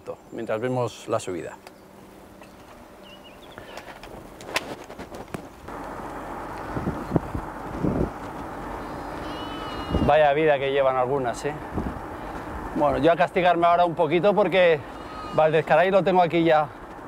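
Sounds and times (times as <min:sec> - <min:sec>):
road noise: 0:00.0 - 0:17.0
rushing wind: 0:03.7 - 0:13.8
sheep bleating: 0:08.8 - 0:10.1, 0:14.6 - 0:15.7.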